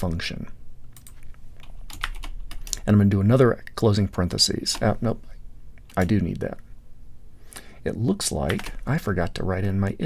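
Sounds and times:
man talking: 0.0s - 0.6s, 2.7s - 6.7s, 7.8s - 10.0s
computer keyboard clicks: 1.0s - 2.8s.

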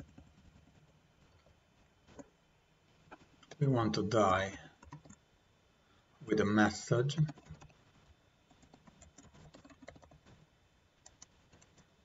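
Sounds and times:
typing on computer keyboard: 4.8s - 5.2s, 8.5s - 10.3s.

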